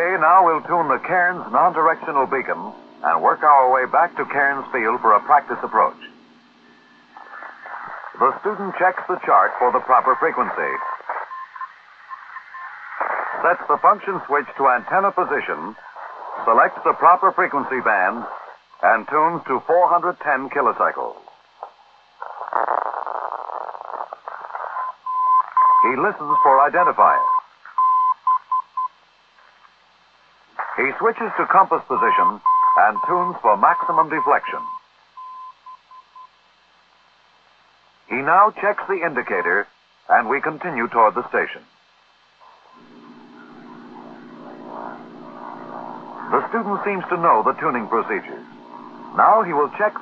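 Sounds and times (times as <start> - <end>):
radio static hiss: 0.0 - 50.0
morse code beeps: 10.7 - 12.8, 24.8 - 28.9, 32.1 - 36.3
propeller plane engine droning: 42.8 - 50.0.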